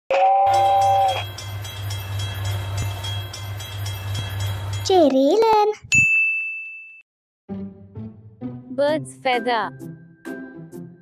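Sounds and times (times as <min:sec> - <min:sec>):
two-tone train whistle: 0:00.2 - 0:01.4
train running on rails: 0:00.4 - 0:05.8.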